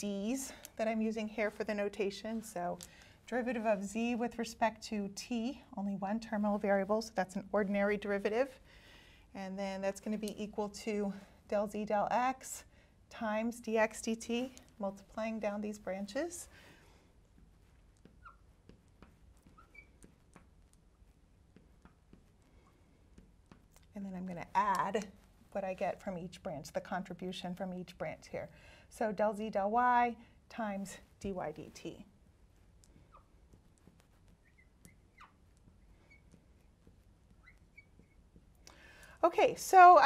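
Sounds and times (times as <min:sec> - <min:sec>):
marker squeaking on glass: 0:18.0 - 0:22.8, 0:32.9 - 0:38.5.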